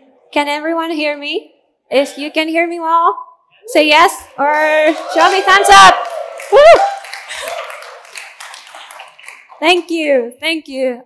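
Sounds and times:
audience cheering: 4.4s - 9.6s
audience clapping: 4.4s - 10.1s.

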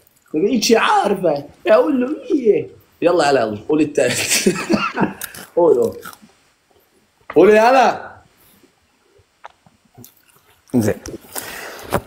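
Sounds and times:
man speaking loudly: 0.4s - 4.2s, 7.4s - 8.2s.

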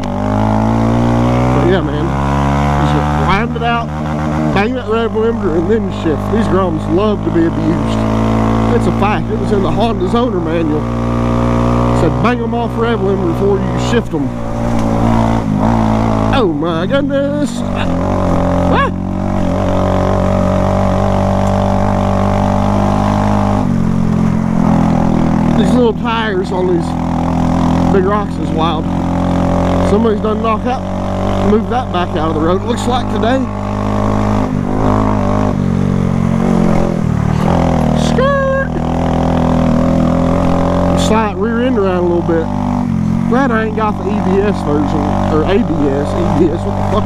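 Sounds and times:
motorcycle engine running: 0.0s - 47.0s.

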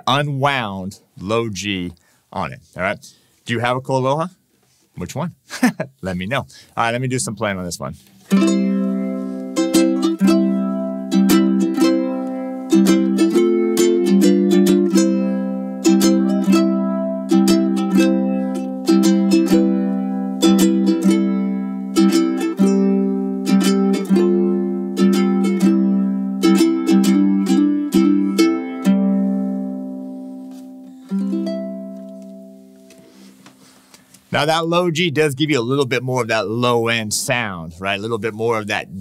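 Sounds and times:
ukulele chords strummed: 8.3s - 33.4s.

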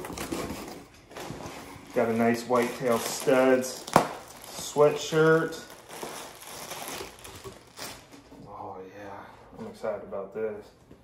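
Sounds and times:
plastic bag crinkling and rustling: 0.0s - 8.4s.

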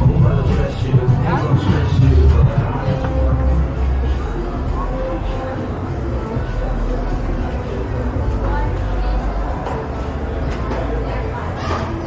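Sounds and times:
steady low rumble: 0.0s - 5.3s
people talking: 0.0s - 12.0s.

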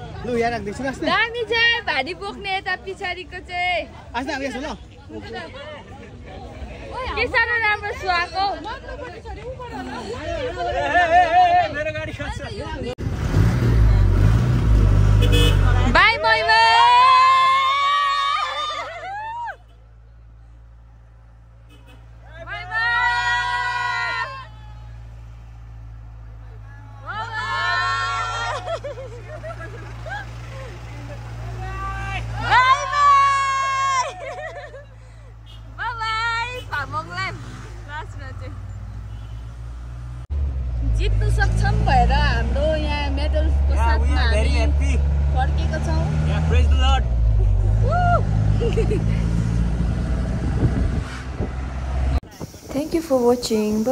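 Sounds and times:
passengers talking: 0.0s - 13.0s, 22.2s - 38.8s, 52.2s - 53.9s
vehicle engine humming: 0.0s - 53.9s.

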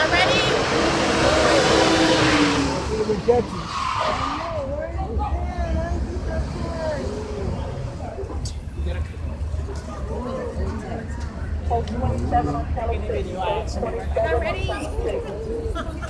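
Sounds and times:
vehicle passing with rushing noise: 0.0s - 8.4s
low traffic rumble: 0.0s - 16.0s
people's voices: 0.0s - 16.0s.

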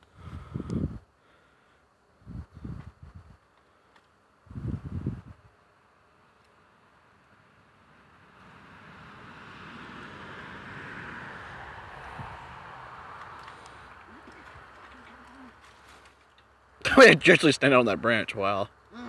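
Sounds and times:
wind buffeting microphone: 0.2s - 1.0s, 2.2s - 3.4s, 4.5s - 5.5s, 11.9s - 12.8s
outdoor rushing noise: 7.3s - 14.9s.

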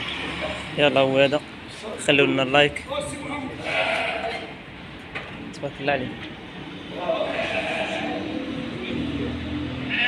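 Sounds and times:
sheep bleating: 3.5s - 4.6s, 7.0s - 8.3s.

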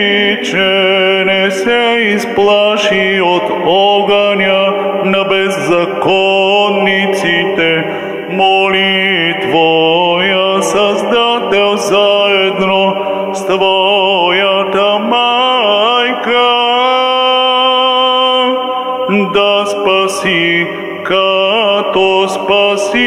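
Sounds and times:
man chanting into microphone: 0.0s - 23.0s.

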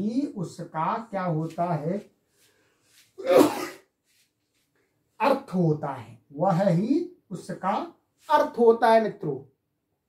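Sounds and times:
man speaking: 0.0s - 2.2s, 5.2s - 9.5s
man sneezing: 3.2s - 3.9s.

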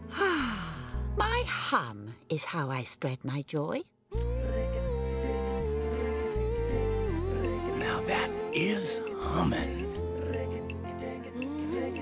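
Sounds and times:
soft music: 4.2s - 12.0s.

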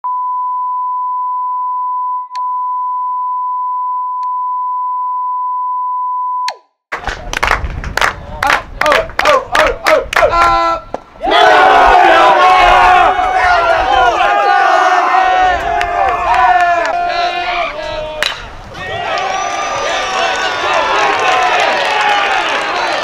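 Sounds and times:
crowd cheering: 6.9s - 23.0s
group shouting in rhythm: 11.2s - 23.0s.

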